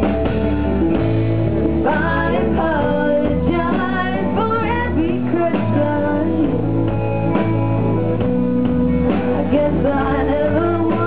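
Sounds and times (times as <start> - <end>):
bass guitar: 0.0 - 11.0
drum kit: 0.0 - 11.0
electric guitars: 0.0 - 11.0
woman singing: 1.8 - 7.1, 9.1 - 11.0.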